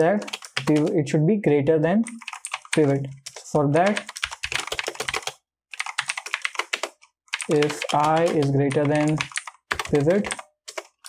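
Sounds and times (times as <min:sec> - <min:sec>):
typing on computer keyboard: 0:00.2 - 0:00.9, 0:02.0 - 0:11.0.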